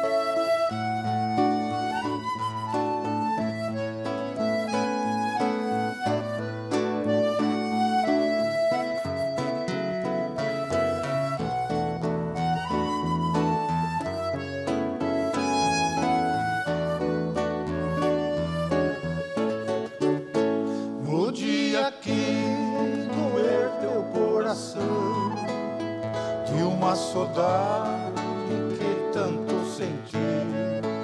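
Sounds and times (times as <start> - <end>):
accordion: 0.0 - 31.0
acoustic guitars: 0.0 - 31.0
flute: 0.0 - 31.0.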